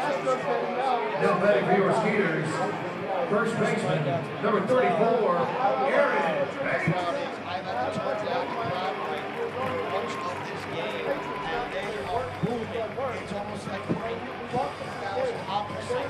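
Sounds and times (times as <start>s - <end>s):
crowd chatter: 0.0s - 16.0s.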